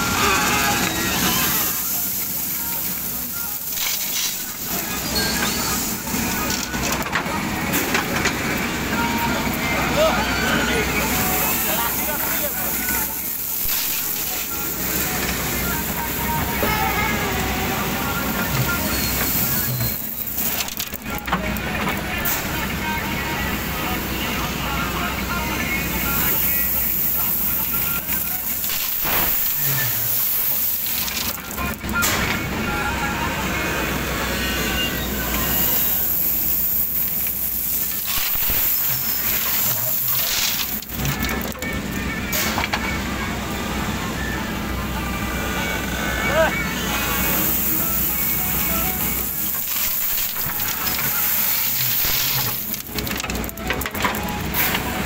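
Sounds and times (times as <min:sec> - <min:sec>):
diesel engine under load: 0:00.0 - 0:55.0.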